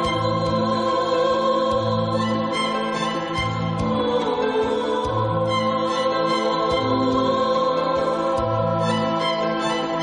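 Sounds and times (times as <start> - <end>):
slow held chords music: 0.0 - 10.0.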